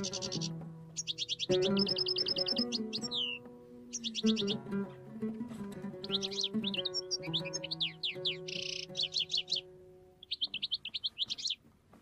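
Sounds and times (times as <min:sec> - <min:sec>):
songbird chirps and trills: 0:00.0 - 0:12.0.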